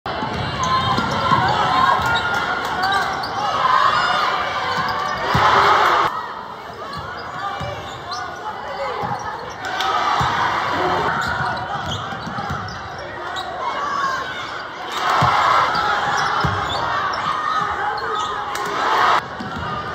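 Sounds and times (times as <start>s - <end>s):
crowd voices and shouts: 0.1s - 19.9s.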